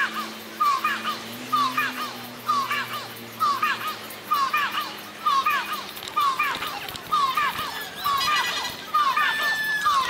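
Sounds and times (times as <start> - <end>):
bird-like chirp: 0.0 - 10.0
thin whistle-like tone: 0.6 - 10.0.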